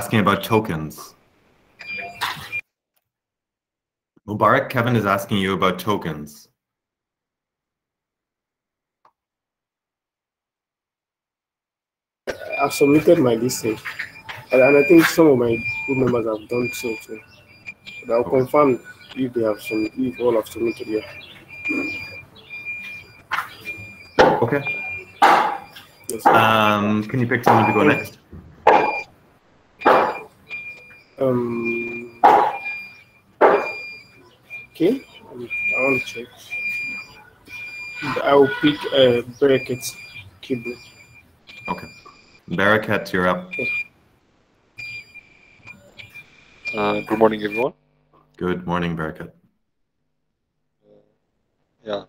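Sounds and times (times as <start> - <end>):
high-pitched electronic beeps: 1.8 - 2.6, 12.3 - 29.1, 29.8 - 43.9, 44.8 - 47.8.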